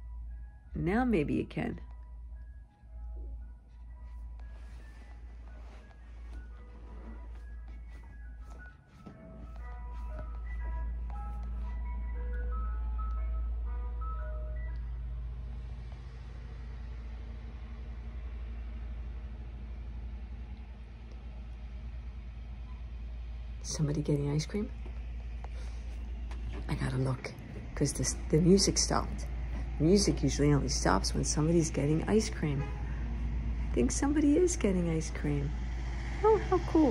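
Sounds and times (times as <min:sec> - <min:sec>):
ice cream truck jingle: 0:00.0 - 0:15.9
low steady rumble: 0:00.0 - 0:36.9.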